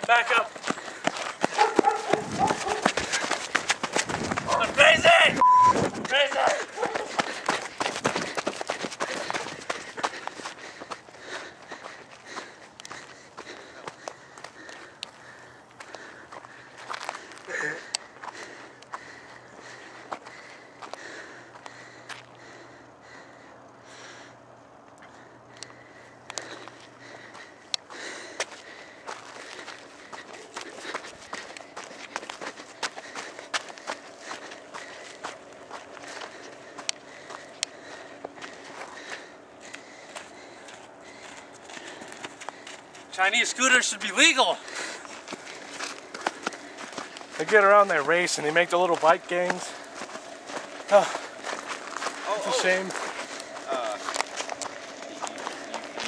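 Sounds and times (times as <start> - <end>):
footsteps crunching on gravel: 0.0 - 22.5, 26.3 - 56.0.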